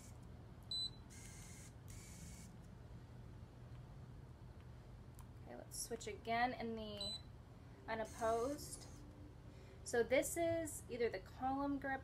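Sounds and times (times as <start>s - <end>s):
soft motor whirs: 1.1s - 2.6s, 8.0s - 9.2s.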